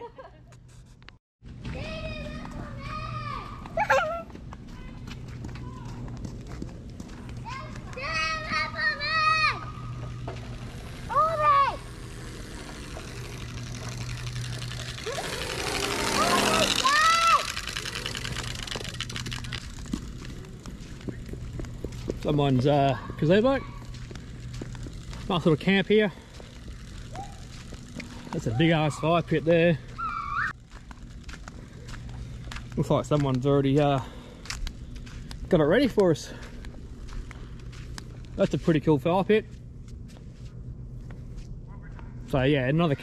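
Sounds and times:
steady low hum: 0:00.0 - 0:43.0
children calling out: 0:07.4 - 0:10.2, 0:15.0 - 0:18.5, 0:29.9 - 0:30.5.

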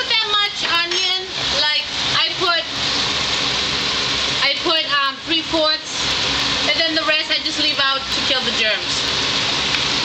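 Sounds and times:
meatballs sizzling in oil: 0:00.0 - 0:10.0.

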